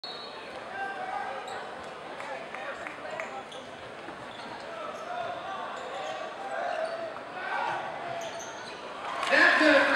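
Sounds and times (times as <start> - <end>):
voices echoing in gym: 4.6 - 9.9.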